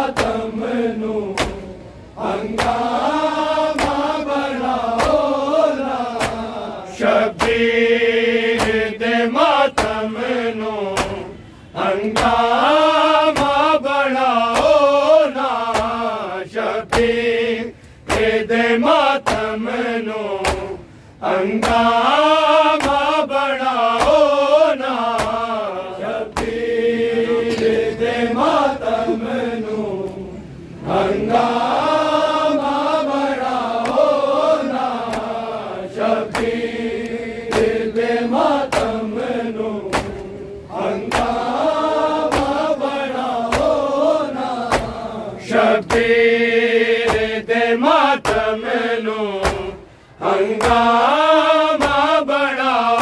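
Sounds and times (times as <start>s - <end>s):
men chanting mournfully: 0.0s - 53.0s
hands slapping chests: 0.1s - 0.4s, 1.3s - 1.7s, 2.5s - 3.0s, 3.7s - 4.2s, 4.9s - 5.4s, 6.1s - 6.7s, 8.5s - 8.9s, 9.7s - 10.0s, 10.9s - 11.2s, 15.6s - 16.0s, 20.4s - 20.8s, 21.6s - 22.0s, 22.7s - 23.2s, 23.8s - 24.3s, 25.0s - 25.6s, 26.3s - 26.6s, 35.0s - 35.5s, 36.3s - 40.4s, 41.0s - 41.6s, 42.3s - 42.7s, 43.4s - 43.8s, 44.7s - 45.0s, 47.0s - 47.3s, 48.2s - 48.6s, 49.4s - 49.8s, 50.5s - 51.2s.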